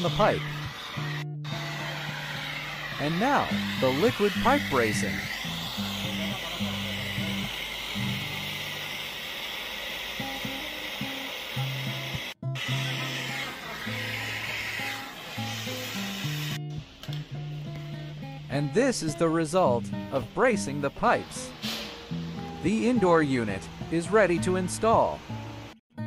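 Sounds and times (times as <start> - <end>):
gas torch flame hissing: 0.0 - 16.6, 20.1 - 22.9.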